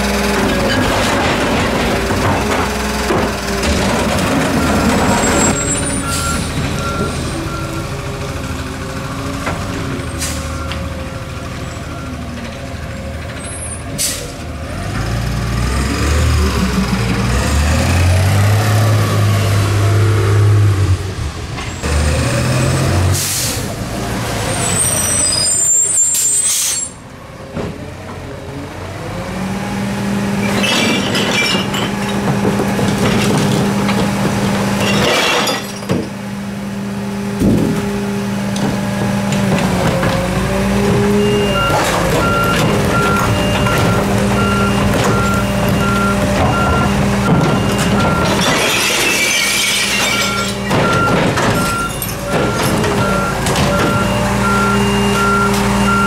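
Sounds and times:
garbage truck engine: 0.0 - 56.0
air brakes hissing: 14.0 - 14.4, 23.2 - 23.7, 24.9 - 27.0.

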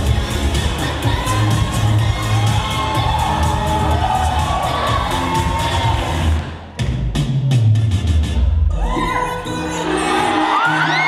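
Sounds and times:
audience cheering and shouting: 0.0 - 6.7, 8.6 - 11.0
hip-hop music with heavy bass: 0.0 - 11.0.

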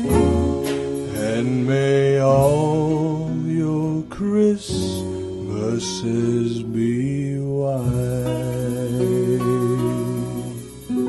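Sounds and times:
acoustic guitar: 0.0 - 11.0
upright bass: 0.0 - 11.0
man singing a long note: 1.1 - 11.0.

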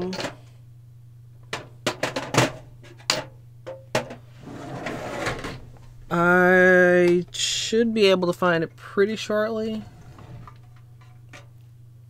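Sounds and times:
drawer sliding on runners: 4.3 - 6.0, 9.7 - 10.8.

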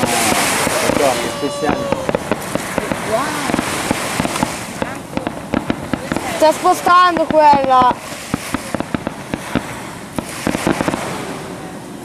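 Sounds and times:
fireworks popping and crackling: 0.0 - 12.0.

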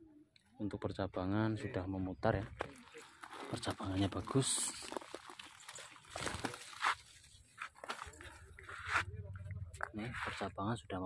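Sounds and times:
rustling and crackling: 2.3 - 10.6.

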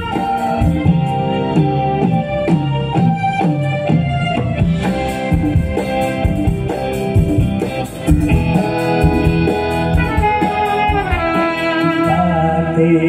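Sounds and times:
trumpet and saxophone lines: 0.0 - 2.6, 8.4 - 13.0
live band playing: 0.0 - 13.0.

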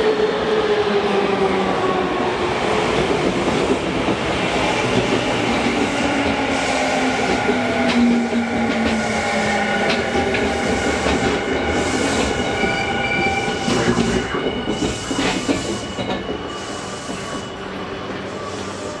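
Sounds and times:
electric train rolling past: 0.0 - 19.0.

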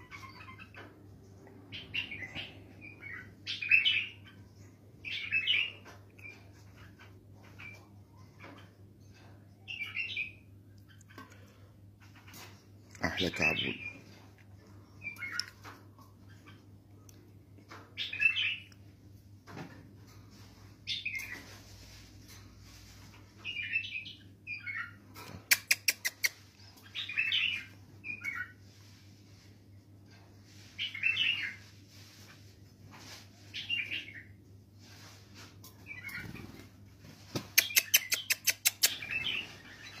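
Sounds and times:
bird chirping: 37.5 - 40.0.

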